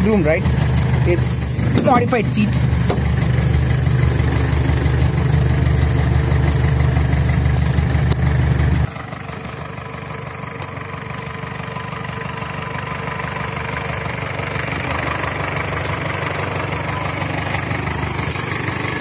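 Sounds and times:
jeep engine idling: 0:00.0 - 0:19.0.

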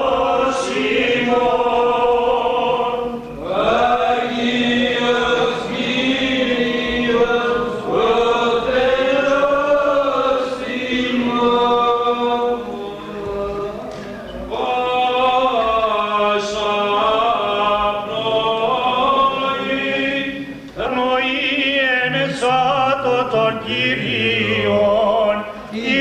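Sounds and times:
men singing a chant: 0:00.0 - 0:26.0.

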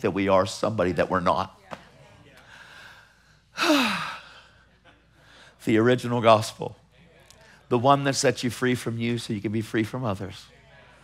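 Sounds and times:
man sighing heavily: 0:03.6 - 0:04.4.

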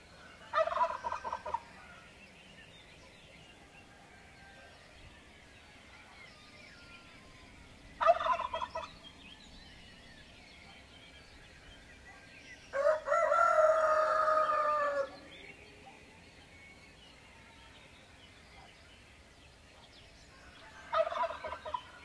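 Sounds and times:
loud bird calls: 0:00.0 - 0:04.8, 0:05.4 - 0:22.0
faint songbird chirping: 0:00.0 - 0:22.0.

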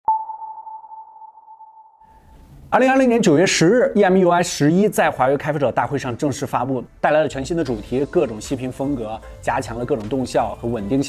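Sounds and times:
electronic ping: 0:00.1 - 0:02.0.

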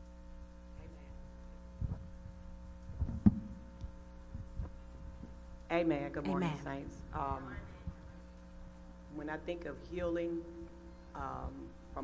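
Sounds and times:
steady electrical hum: 0:00.0 - 0:12.0
microphone handling thumps: 0:01.7 - 0:05.4.

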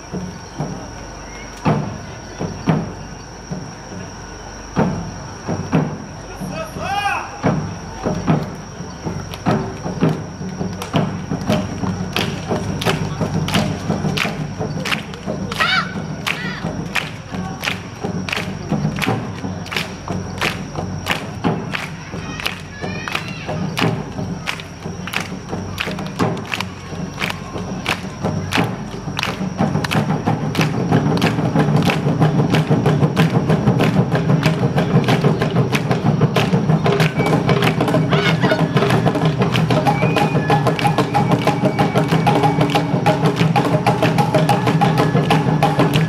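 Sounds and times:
drum and gong strikes: 0:07.4 - 0:17.4, 0:18.0 - 0:46.0.

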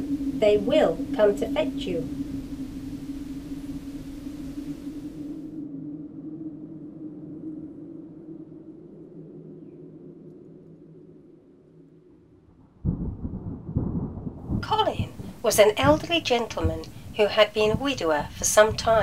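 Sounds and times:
high hiss: 0:00.0 - 0:05.6, 0:14.6 - 0:19.0
thunder rumble: 0:00.0 - 0:08.5, 0:12.5 - 0:19.0
eerie low drone: 0:00.0 - 0:19.0.

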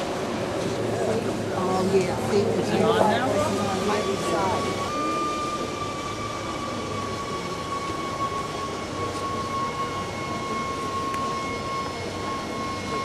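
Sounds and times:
background murmur: 0:00.0 - 0:13.0
voices: 0:00.5 - 0:13.0
steady high tone: 0:01.4 - 0:13.0.

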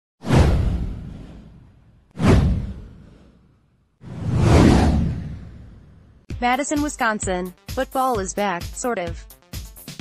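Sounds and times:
downward whoosh with deep boom: 0:00.2 - 0:06.3.

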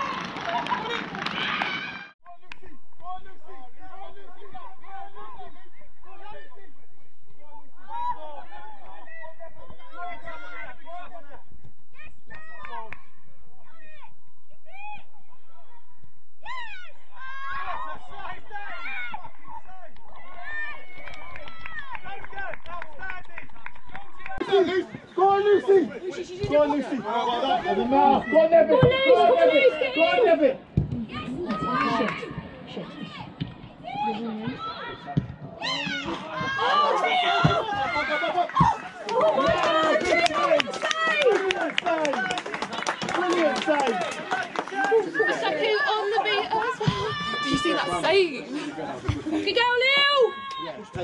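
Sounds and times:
people shouting: 0:16.4 - 0:23.1, 0:33.8 - 0:41.4
voices shouting outdoors: 0:16.4 - 0:51.0.

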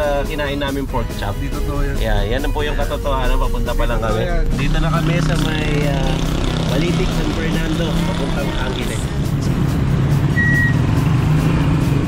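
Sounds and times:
short high beep: 0:10.4 - 0:10.8.

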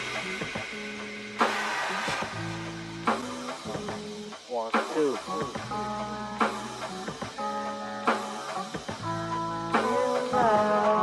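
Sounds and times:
background music held chords: 0:00.0 - 0:11.0.

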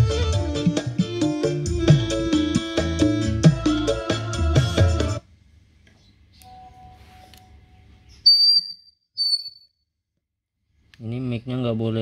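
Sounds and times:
keyboard music: 0:00.0 - 0:05.2
high-pitched feedback squeals: 0:08.2 - 0:09.7.

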